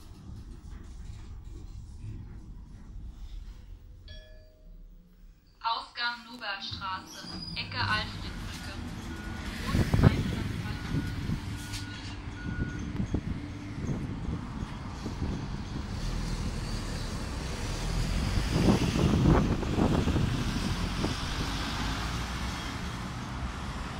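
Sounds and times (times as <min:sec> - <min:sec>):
road traffic rumbling: 0:06.4 - 0:23.9
elevator beeping: 0:06.6 - 0:14.9.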